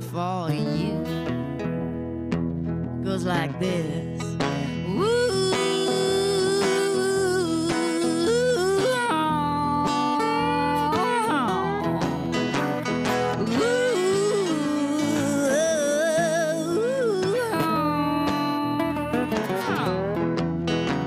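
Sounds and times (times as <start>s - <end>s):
woman singing with vibrato: 0.0s - 2.1s, 3.0s - 20.2s
acoustic guitar: 0.0s - 21.0s
slide resonator guitar: 0.0s - 21.0s.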